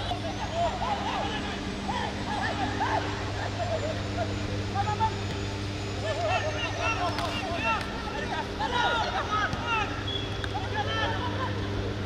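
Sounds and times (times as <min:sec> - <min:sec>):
people shouting calls: 0:00.0 - 0:11.7
steady low hum: 0:00.0 - 0:12.0.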